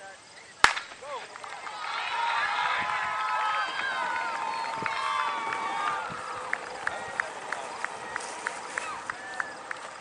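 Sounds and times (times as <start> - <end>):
starter's pistol crack: 0.6 - 1.0
crowd shouting and cheering: 1.2 - 10.0.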